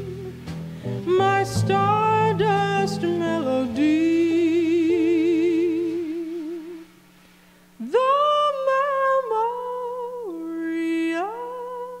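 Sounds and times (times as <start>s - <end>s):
woman singing wordless jazz vocal: 0.0s - 7.0s, 7.8s - 12.0s.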